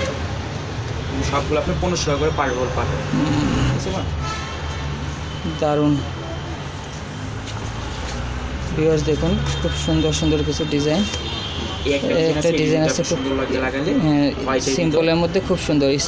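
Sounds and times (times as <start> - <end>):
low traffic rumble: 0.0 - 16.0
people talking: 11.9 - 16.0.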